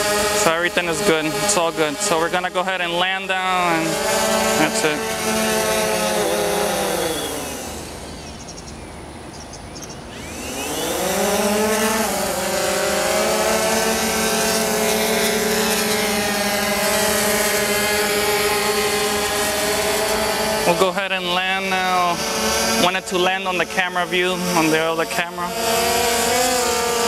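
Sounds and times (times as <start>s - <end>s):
drone propellers buzzing: 0.0s - 27.0s.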